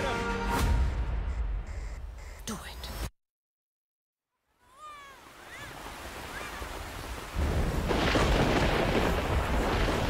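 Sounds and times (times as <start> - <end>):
heavy rain pouring: 5.3 - 10.0.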